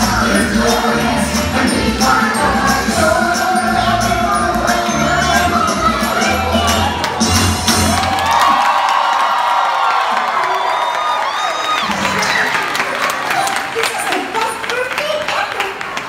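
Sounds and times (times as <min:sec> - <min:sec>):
stage show music: 0:00.0 - 0:09.4
audience cheering and shouting: 0:04.9 - 0:14.5.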